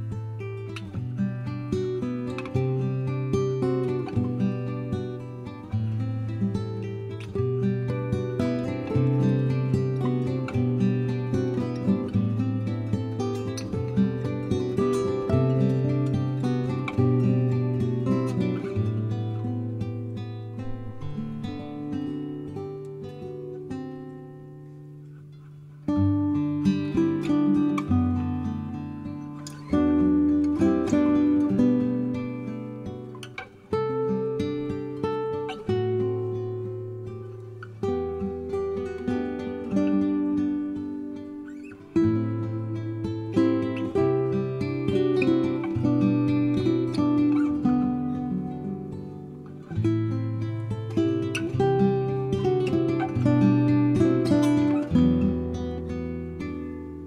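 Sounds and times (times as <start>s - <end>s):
acoustic guitar music: 0.0s - 57.0s.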